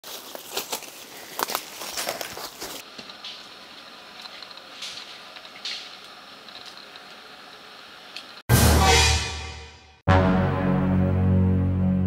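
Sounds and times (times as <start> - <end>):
footsteps through undergrowth: 0.0 - 7.0.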